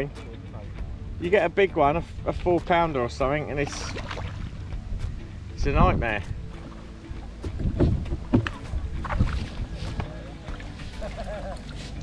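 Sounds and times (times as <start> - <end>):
water splashing: 2.4 - 5.2, 6.3 - 12.0.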